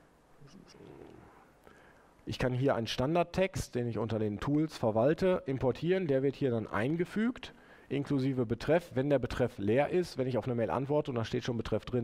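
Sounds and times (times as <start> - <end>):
faint low murmur: 0.0 - 3.0.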